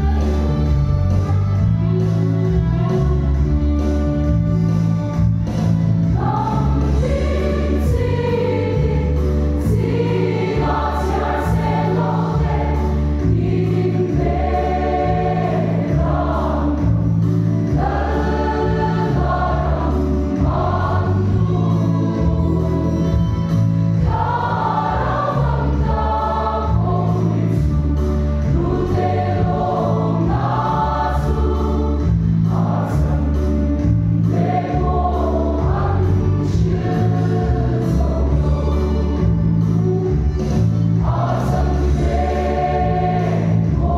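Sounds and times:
choir singing a hymn: 6.0 - 43.9.

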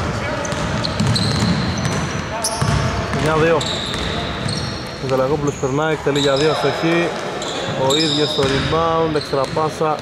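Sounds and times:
sneakers squeaking on gym floor: 0.0 - 10.0
basketball bouncing: 0.4 - 5.5, 6.9 - 10.0.

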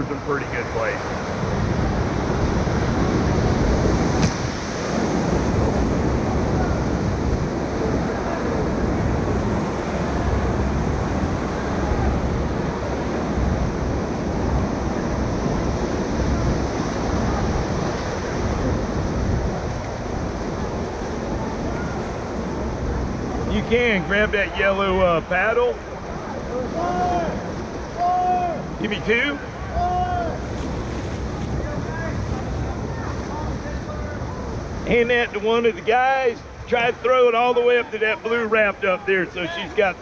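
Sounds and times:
river whitewater rushing: 0.0 - 40.0.

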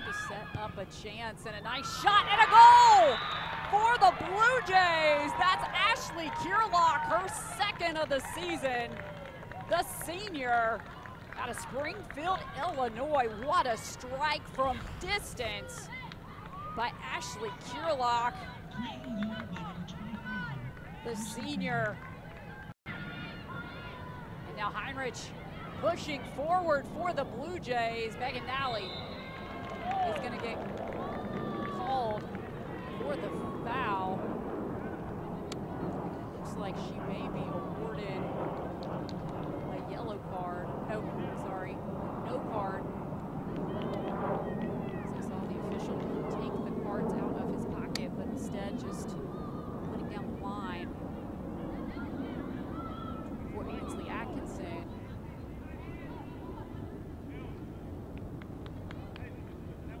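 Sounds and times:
crowd noise: 0.0 - 60.0.

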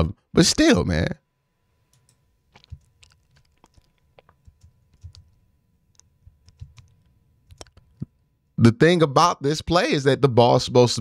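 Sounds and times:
computer controls clicking: 1.9 - 8.1.

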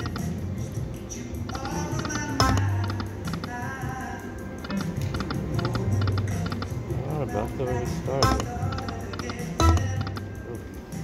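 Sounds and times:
electronic game music: 0.0 - 0.4, 1.4 - 3.6, 4.6 - 11.0
slot machine reels clicking: 0.0 - 0.4, 1.5 - 3.6, 4.6 - 6.8, 8.2 - 10.3.

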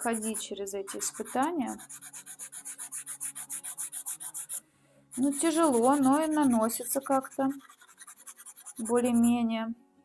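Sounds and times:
pastel pencil scratching on paper: 0.0 - 9.4.

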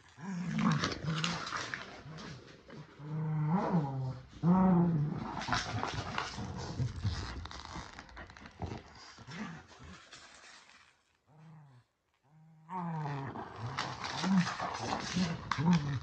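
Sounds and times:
dogs growling in play: 0.0 - 16.0.

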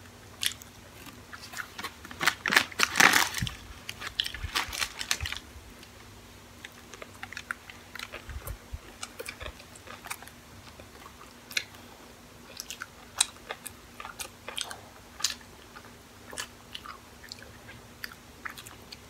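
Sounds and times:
people chewing: 6.6 - 19.0.

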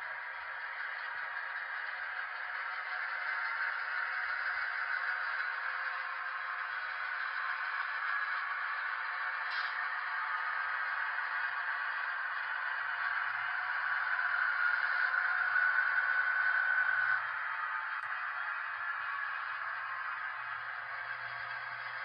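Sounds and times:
model train diesel engine sound: 0.0 - 22.0
steady whine: 0.0 - 22.0.

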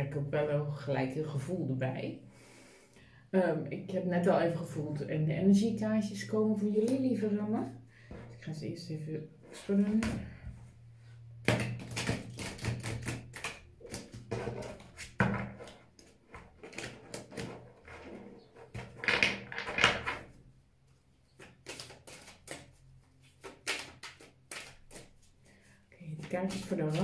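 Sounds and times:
cards being shuffled: 21.4 - 25.4, 26.2 - 27.0.

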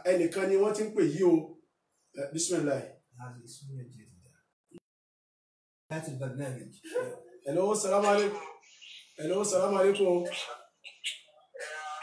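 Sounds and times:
man speaking: 0.0 - 1.4, 2.2 - 4.2, 5.9 - 8.5, 9.2 - 10.6.

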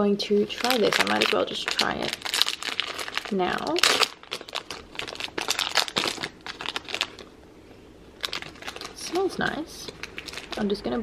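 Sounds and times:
wrapper crinkling: 0.4 - 7.4, 8.2 - 11.0.

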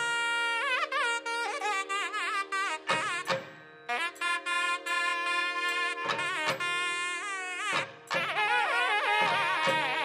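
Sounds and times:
double-reed wind instrument: 0.0 - 10.0
drum strokes: 7.7 - 10.0.

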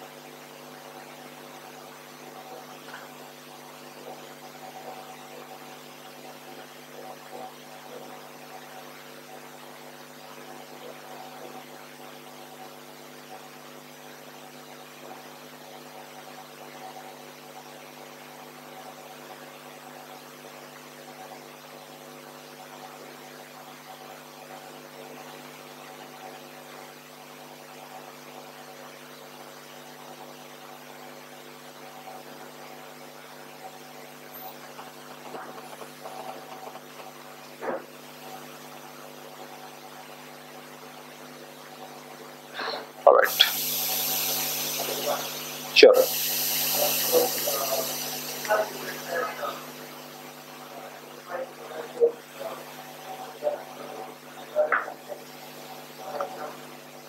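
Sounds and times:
steady electrical hum: 0.0 - 57.0.

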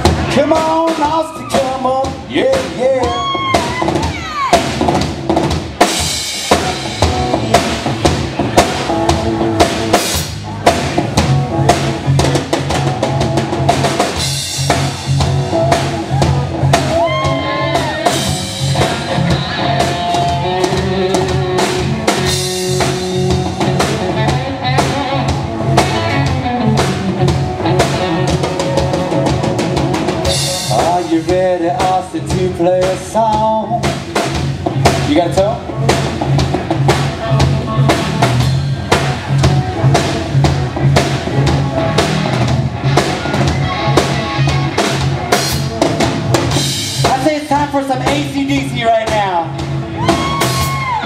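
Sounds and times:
drum kit: 0.0 - 51.0
rock band playing: 0.0 - 51.0.

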